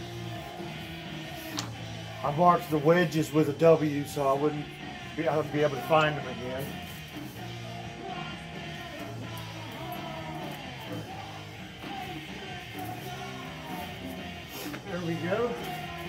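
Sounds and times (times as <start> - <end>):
rock song with vocals and guitar: 0.0 - 16.0.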